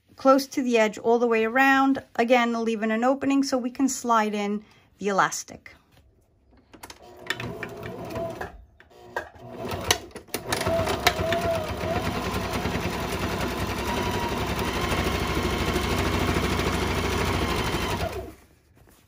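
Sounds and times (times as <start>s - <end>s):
sewing machine clicks: 6.8s - 18.3s
sewing machine stitching: 6.9s - 18.4s.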